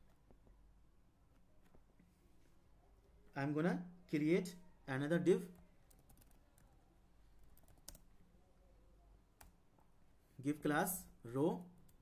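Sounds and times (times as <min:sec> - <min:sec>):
typing on computer keyboard: 0:05.6 - 0:06.8, 0:07.4 - 0:08.1.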